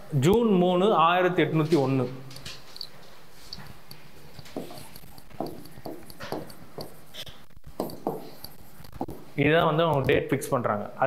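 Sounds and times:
stylus tapping on glass: 4.5 - 7.1, 7.8 - 9.3.

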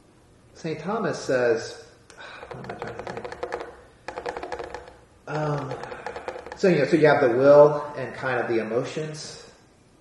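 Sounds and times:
keyboard typing clicks: 2.4 - 6.7.

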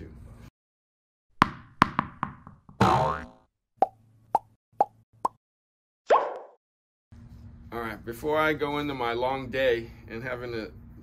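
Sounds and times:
springy boing glide: 2.8 - 3.4.

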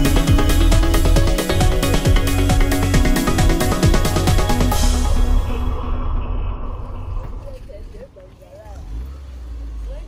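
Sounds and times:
low rumble: 0.0 - 9.2.

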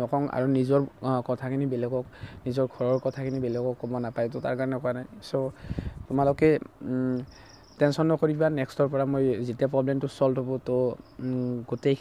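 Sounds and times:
man speaking: 0.0 - 12.0
faint high steady tone: 1.8 - 5.6, 6.8 - 8.9, 10.0 - 12.0.

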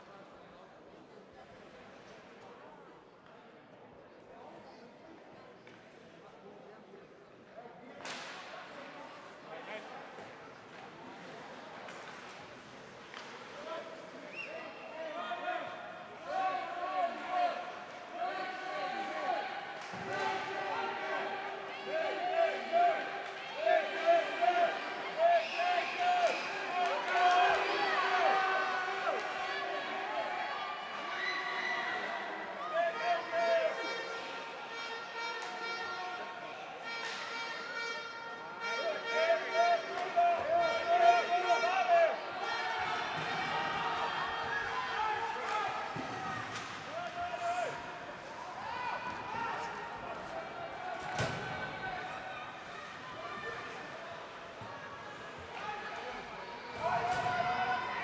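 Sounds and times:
players calling and shouting: 14.3 - 58.0.

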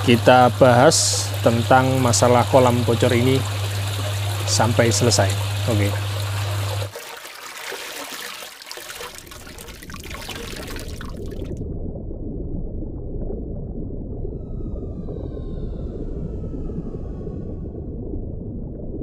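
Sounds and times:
steady low hum: 0.0 - 6.9, 9.2 - 19.0
waterfall splashing into pond: 0.0 - 11.6
low underwater rumble: 9.0 - 19.0
whale calls gliding downward: 13.8 - 18.7.

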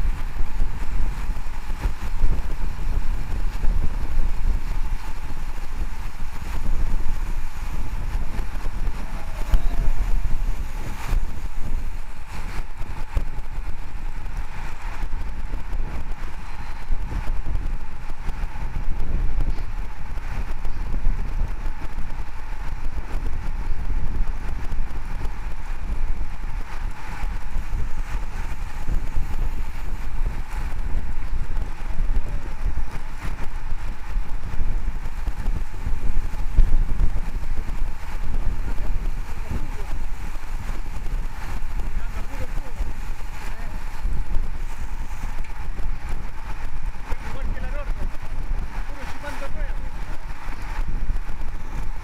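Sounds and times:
road noise rushing: 0.0 - 52.0
wind buffeting microphone: 0.0 - 52.0.

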